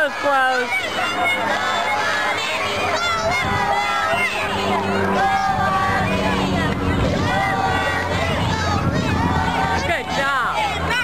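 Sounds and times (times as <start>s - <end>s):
children calling out: 0.0s - 11.0s.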